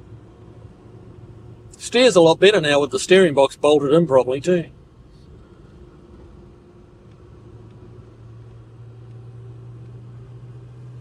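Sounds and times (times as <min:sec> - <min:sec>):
car engine droning: 0:00.0 - 0:11.0
road noise: 0:00.0 - 0:11.0.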